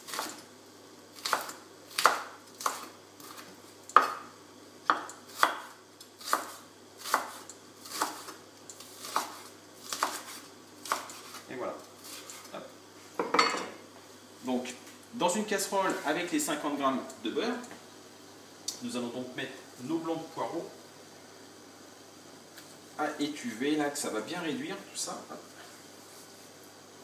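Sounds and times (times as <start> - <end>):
knife slicing on wooden board: 9.0 - 11.4.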